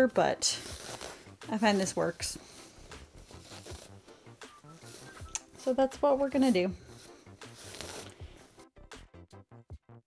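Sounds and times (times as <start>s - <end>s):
corduroy fabric rustling: 0.4s - 8.6s.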